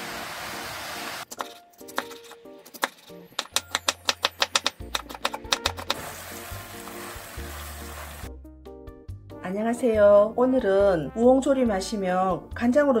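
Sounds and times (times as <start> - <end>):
background music: 0.0 - 13.0
knife chopping on wooden board: 1.3 - 6.0.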